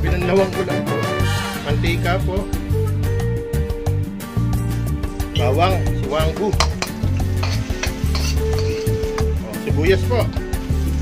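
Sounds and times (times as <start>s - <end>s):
background music with low bass: 0.0s - 11.0s
garlic sizzling in hot oil: 6.6s - 9.4s.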